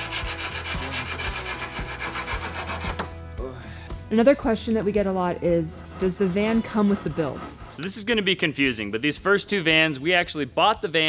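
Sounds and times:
hand tool rasping: 0.0 - 3.2, 4.8 - 8.4.

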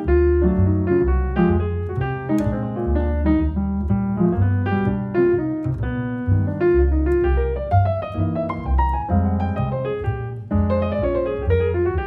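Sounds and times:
jazz piano solo: 0.0 - 12.0
plucked double bass: 0.0 - 12.0.

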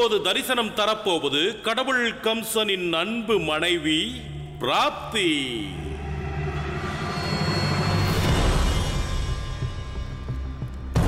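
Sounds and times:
ominous low rumbling drone music: 3.7 - 11.0.

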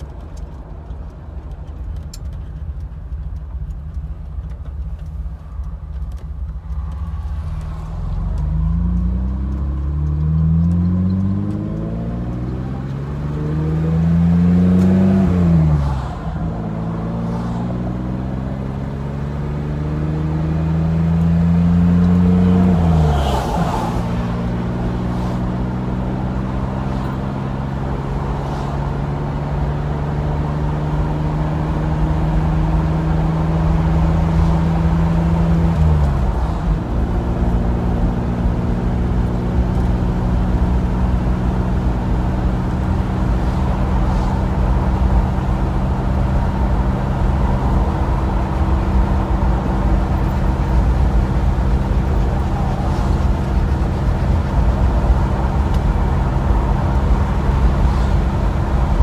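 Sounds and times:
car engine accelerating: 0.0 - 59.0
road rumble: 0.0 - 59.0
wind through open window: 0.0 - 59.0.

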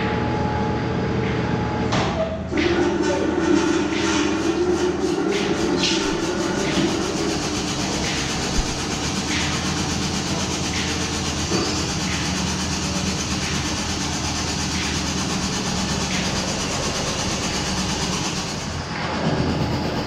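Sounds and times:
machinery rumble: 0.0 - 20.0.

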